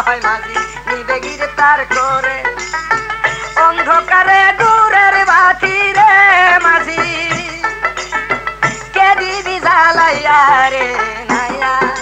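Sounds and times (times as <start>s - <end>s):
held folk melody line: 0.0s - 12.0s.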